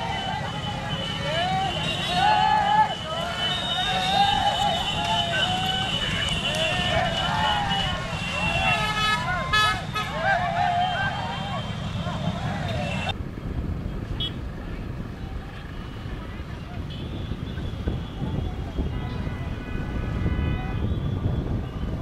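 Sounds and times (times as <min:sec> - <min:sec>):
people shouting: 0:00.0 - 0:13.1
horns tooting: 0:00.0 - 0:13.2, 0:15.6 - 0:22.0
motorcycle engines rumbling: 0:00.0 - 0:22.0.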